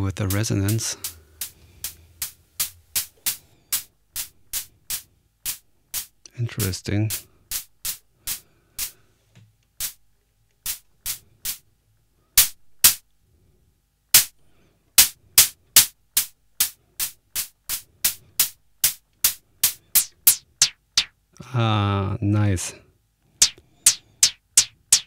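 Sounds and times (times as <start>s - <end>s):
synthesizer hi-hat hits: 0.0s - 9.0s, 9.8s - 11.6s, 12.4s - 13.0s, 14.2s - 14.4s, 15.0s - 21.2s, 23.4s - 25.0s.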